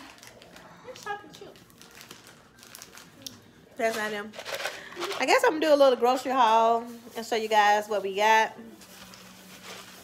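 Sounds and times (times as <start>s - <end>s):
plastic snack bag crinkling: 0.0s - 7.3s, 8.6s - 10.0s.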